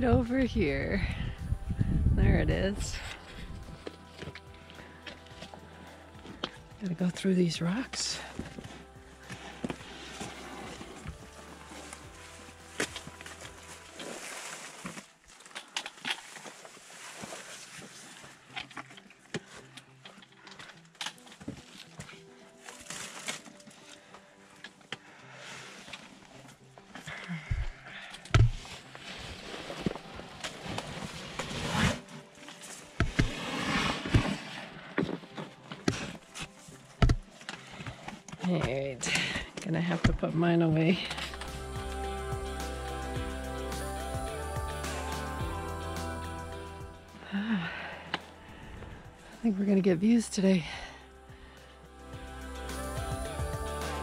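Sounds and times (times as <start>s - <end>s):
faint music: 0.0s - 54.0s
boots and poles scraping on rock: 2.6s - 24.1s, 28.3s - 41.5s
rustle of packs and clothing: 7.6s - 40.0s.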